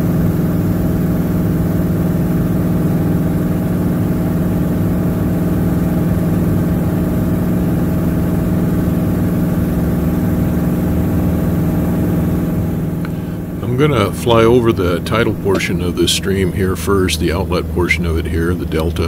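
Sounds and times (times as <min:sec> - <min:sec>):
propeller plane engine drone: 0:00.0 - 0:19.0.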